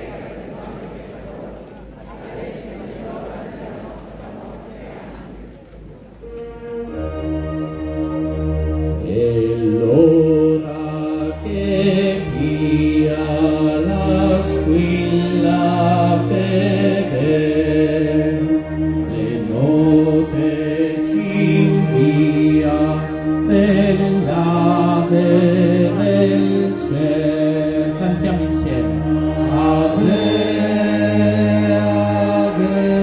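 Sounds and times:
steady accompanying chords: 0:00.0 - 0:33.0
voices singing a hymn: 0:02.1 - 0:05.2, 0:06.9 - 0:33.0.

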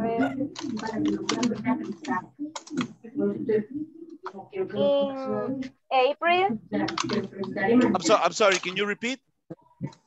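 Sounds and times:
computer keyboard typing: 0:00.5 - 0:02.9, 0:06.8 - 0:07.3.

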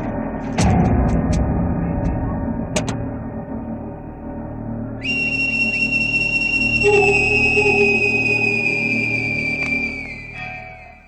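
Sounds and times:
low sustained drone: 0:01.4 - 0:11.0
lower held note: 0:05.0 - 0:10.9
high whistle-like tone: 0:05.0 - 0:11.0.

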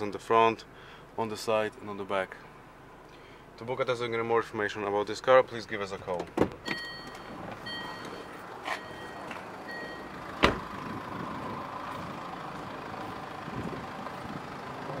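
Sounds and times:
outdoor background noise: 0:00.0 - 0:15.0
car door shutting: 0:06.2 - 0:10.8
car warning chime beeping: 0:06.6 - 0:10.3.

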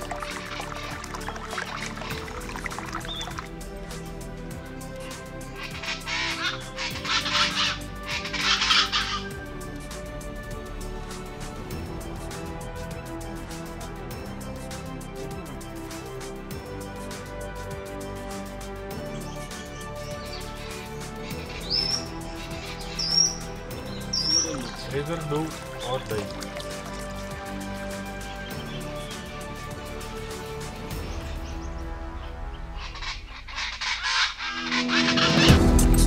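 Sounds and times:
harsh bird calls: 0:00.0 - 0:03.8, 0:04.8 - 0:09.8, 0:18.9 - 0:35.7
background music with held notes: 0:00.0 - 0:36.0
bird rising whistles: 0:02.8 - 0:03.4.

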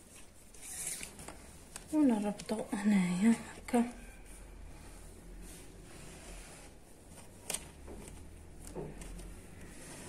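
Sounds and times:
tape sliding over fabric: 0:00.0 - 0:02.6, 0:03.2 - 0:10.0.

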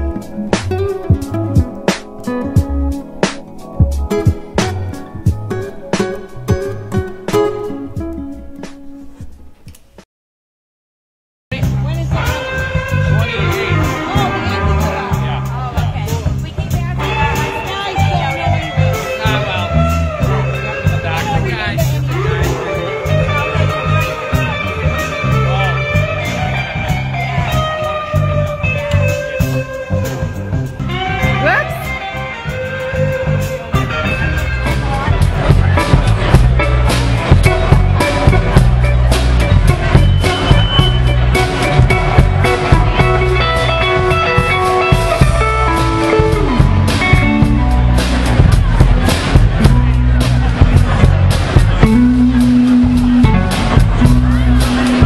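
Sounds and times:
electric guitar lead notes: 0:00.0 - 0:09.1, 0:11.5 - 0:55.0
live rock band playing: 0:00.0 - 0:09.4, 0:11.5 - 0:55.0
bass: 0:00.0 - 0:10.0, 0:11.5 - 0:55.0
drums: 0:00.0 - 0:10.0, 0:11.5 - 0:55.0.

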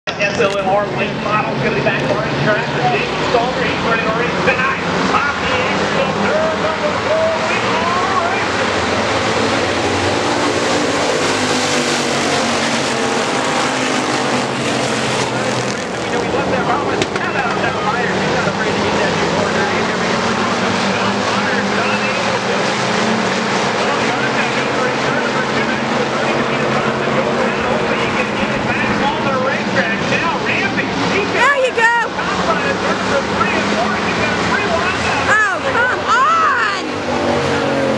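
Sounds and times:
race car engines passing: 0:00.1 - 0:37.9
voices: 0:00.1 - 0:37.9.

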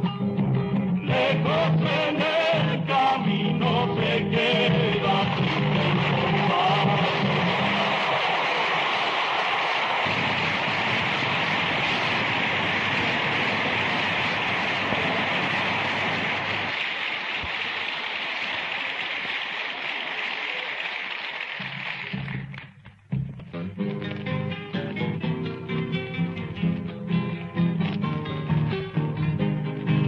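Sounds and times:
audience applauding: 0:04.4 - 0:22.8.

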